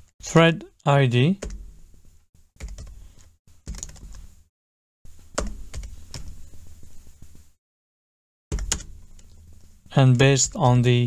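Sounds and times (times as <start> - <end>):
computer keyboard typing: 2.6 - 4.2, 8.5 - 9.4.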